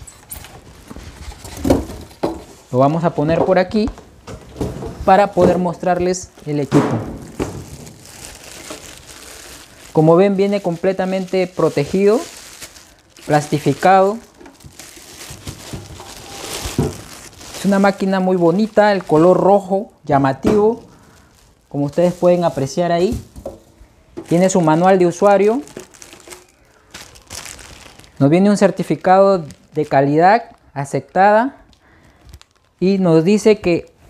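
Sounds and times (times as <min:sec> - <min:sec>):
plastic wrapping crinkling: 0:00.0 - 0:03.9, 0:05.0 - 0:33.8
cardboard rustling: 0:03.8 - 0:19.9, 0:20.6 - 0:28.1.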